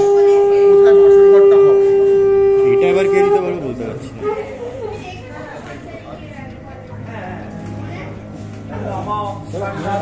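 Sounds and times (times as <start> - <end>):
conch shell blown: 0.0 - 4.6.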